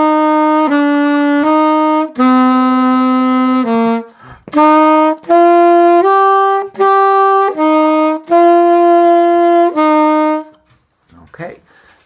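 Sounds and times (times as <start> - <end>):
alto saxophone slow melody: 0.0 - 10.7.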